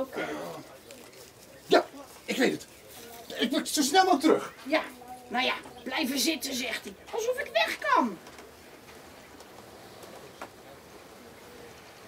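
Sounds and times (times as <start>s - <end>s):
faint outdoor background: 0.0s - 12.0s
woman speaking: 4.6s - 8.2s.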